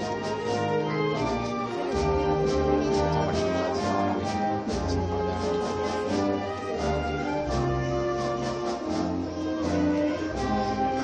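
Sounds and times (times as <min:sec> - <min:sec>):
percussion beat: 0:00.0 - 0:06.5
brass sustained chords: 0:00.0 - 0:11.0
wind band playing a march: 0:00.0 - 0:11.0.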